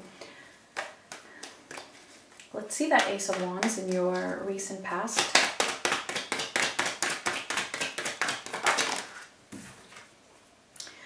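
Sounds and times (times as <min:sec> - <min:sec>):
cards being shuffled: 0:00.7 - 0:04.4, 0:05.1 - 0:10.1.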